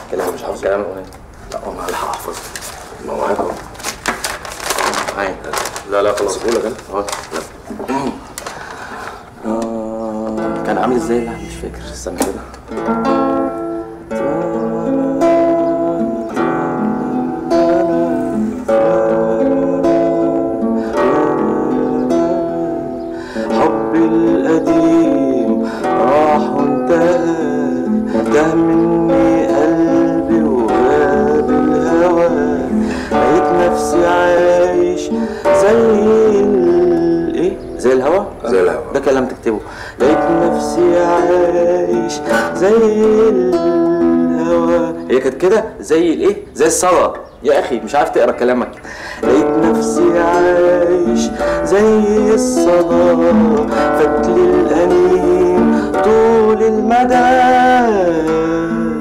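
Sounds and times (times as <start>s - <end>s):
nylon-string acoustic guitar: 0.0s - 59.0s
man singing slow song: 9.2s - 12.7s, 13.4s - 59.0s.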